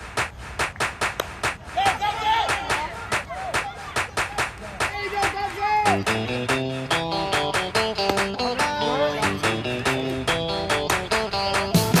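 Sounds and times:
fast rhythmic hand-clapping: 0.0 - 12.0.

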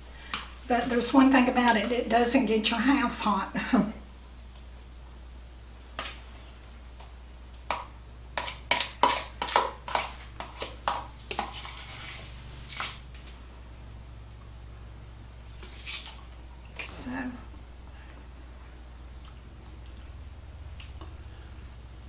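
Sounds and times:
spoon tapping and scraping bowl: 7.7 - 12.9.

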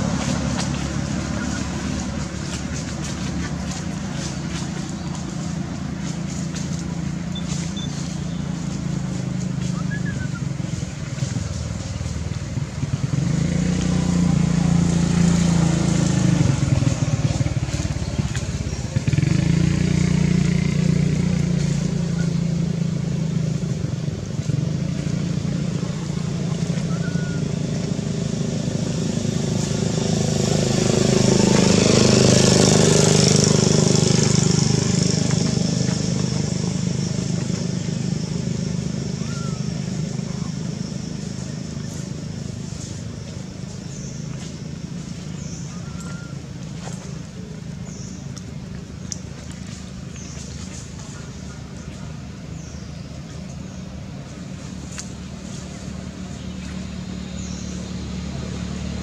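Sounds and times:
motor traffic hum: 0.0 - 59.0
vehicle passing: 0.0 - 59.0.

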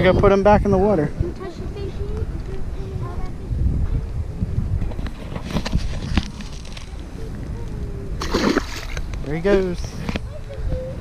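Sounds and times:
wind rumbling on microphone: 0.0 - 11.0
fish splashing into water: 8.2 - 9.0.

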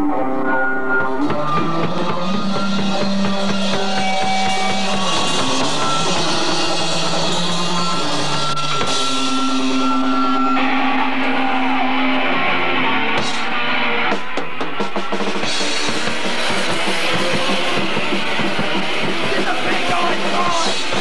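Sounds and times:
punk rock band playing: 0.0 - 21.0
drums hitting alone: 13.2 - 21.0.

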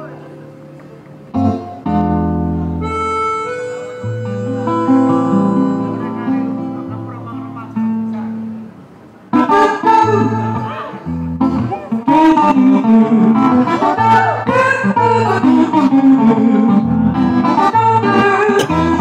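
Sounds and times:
acoustic guitar strumming: 1.3 - 19.0
harmonica held notes: 1.4 - 7.1, 9.4 - 19.0.

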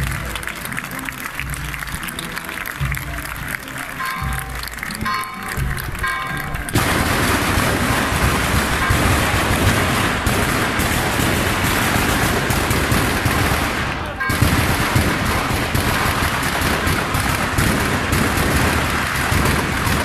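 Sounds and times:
firecrackers crackling: 0.0 - 20.0
music: 0.0 - 20.0.

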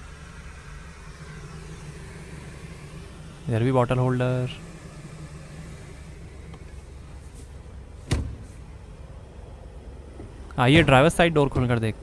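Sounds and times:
low hum in car cabin: 0.0 - 12.0.

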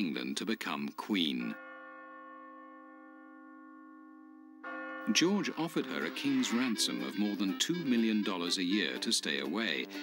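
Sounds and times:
bell-like tone in music: 1.6 - 8.1.

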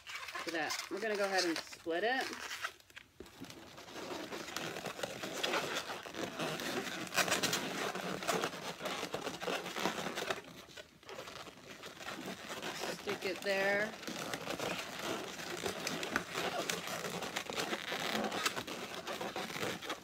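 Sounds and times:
rubbing of rubber balloons: 0.0 - 20.0.

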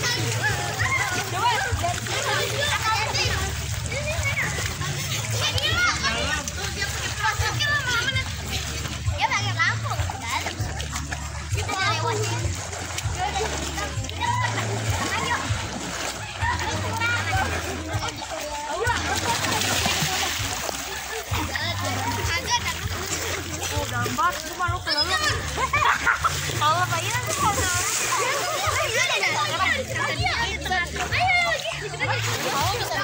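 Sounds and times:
children calling and chattering: 0.0 - 33.0
children splashing in pool: 0.0 - 33.0.

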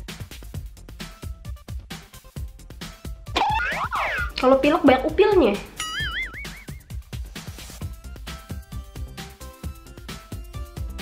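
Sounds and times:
warbling comic sound effect: 3.4 - 4.4, 5.8 - 6.8
electronic music with beat: 5.9 - 7.0.

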